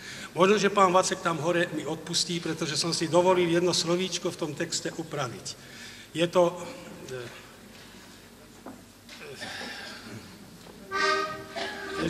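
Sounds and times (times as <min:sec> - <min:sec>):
faint voices murmuring: 0:06.8 - 0:12.0
button accordion chord: 0:10.9 - 0:12.0.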